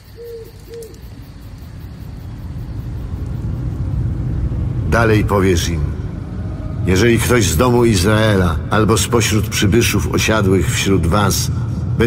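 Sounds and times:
low rumble: 0:01.2 - 0:12.0.

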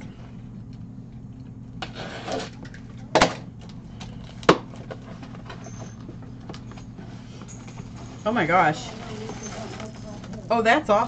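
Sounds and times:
steady low hum: 0:00.0 - 0:11.0
packing tape being cut: 0:01.8 - 0:02.6
cardboard rustling: 0:06.8 - 0:10.6.

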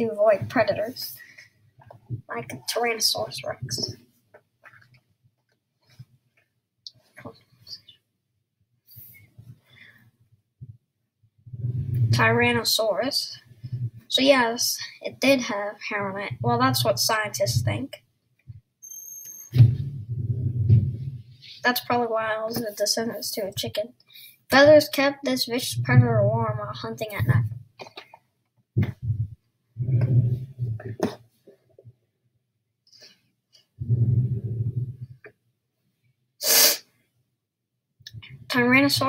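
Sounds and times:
faint high electronic whine: 0:18.8 - 0:21.3
deep low rumble: 0:19.6 - 0:21.4, 0:28.8 - 0:31.0
forceful sneeze-like breath: 0:36.4 - 0:36.9.

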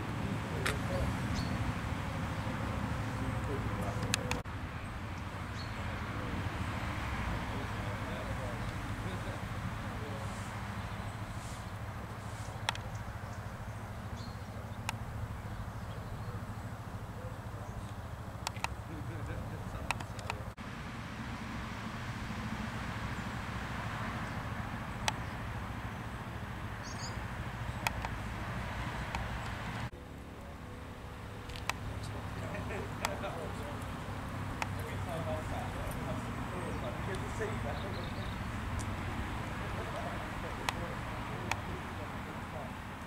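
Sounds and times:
distant voices: 0:00.0 - 0:43.0
sharp clicks: 0:00.6 - 0:00.8, 0:03.8 - 0:04.4, 0:12.5 - 0:13.1, 0:17.8 - 0:20.6, 0:25.0 - 0:25.3, 0:27.8 - 0:28.2, 0:29.0 - 0:29.8, 0:31.4 - 0:32.2, 0:38.7 - 0:41.7.

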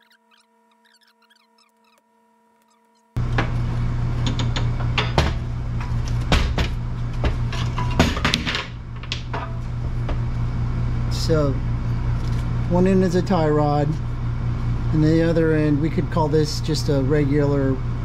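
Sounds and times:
steady low hum: 0:00.0 - 0:18.0
metal parts knocking on workbench: 0:04.2 - 0:09.6.

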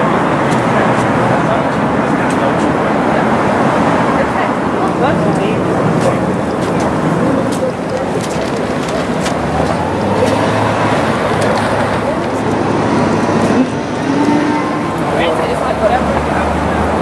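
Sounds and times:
city street traffic: 0:00.0 - 0:17.0
indistinct voices of passers-by: 0:00.0 - 0:17.0.

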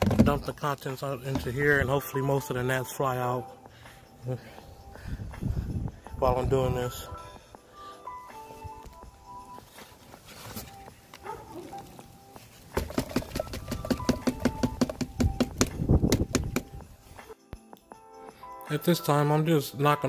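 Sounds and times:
background music held notes: 0:00.4 - 0:20.0
egg crate knocking on plastic tub: 0:12.8 - 0:16.7.

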